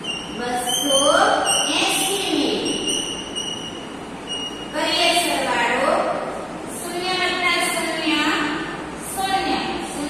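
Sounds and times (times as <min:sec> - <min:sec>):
high chalk squeak: 0:00.0 - 0:04.8
woman speaking: 0:00.4 - 0:02.9, 0:04.7 - 0:10.0.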